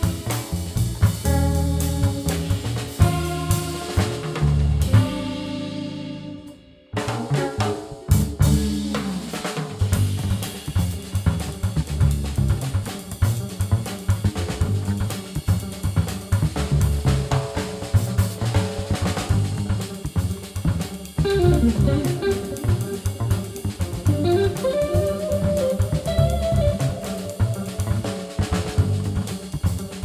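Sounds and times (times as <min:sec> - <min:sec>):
drum kit: 0:00.0 - 0:30.0
jazz fusion band playing: 0:00.0 - 0:30.0.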